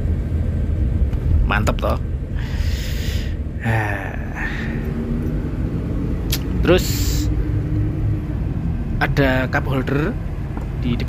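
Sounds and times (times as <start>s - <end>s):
low rumble of moving bus: 0.0s - 11.0s
short breathy rush: 2.3s - 3.4s.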